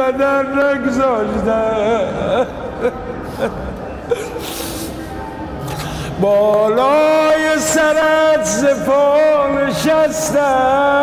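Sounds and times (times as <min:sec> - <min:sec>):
steady background noise: 0:00.0 - 0:11.0
hissing gasp of breath: 0:04.2 - 0:06.2.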